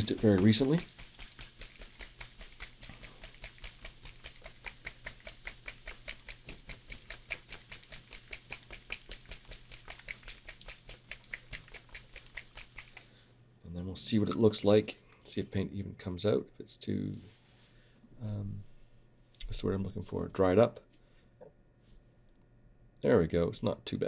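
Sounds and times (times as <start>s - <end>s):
paint bottle rattling when shaken: 0.0s - 13.1s.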